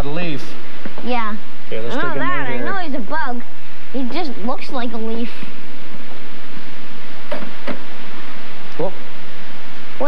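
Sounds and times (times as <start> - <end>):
murmur of a voice: 1.6 - 5.2.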